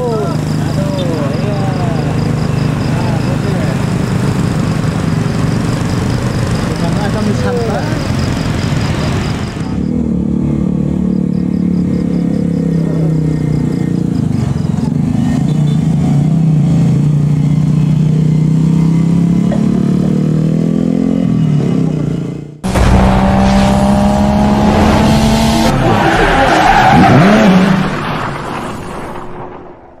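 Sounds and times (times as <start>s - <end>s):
motorcycle and car engines passing: 0.0s - 25.9s.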